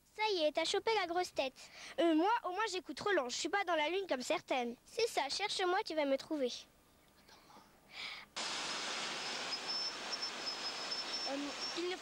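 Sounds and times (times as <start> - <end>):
faint high whine: 8.4 - 12.0
surf hissing on beach: 8.4 - 12.0.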